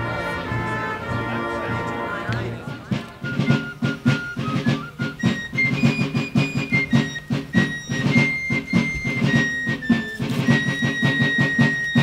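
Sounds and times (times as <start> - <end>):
fife melody: 0.0 - 12.0
snare drumming: 0.0 - 12.0.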